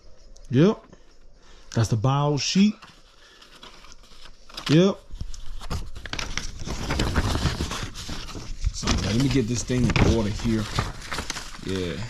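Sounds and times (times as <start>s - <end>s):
paper sheets rustling: 2.4s - 12.0s.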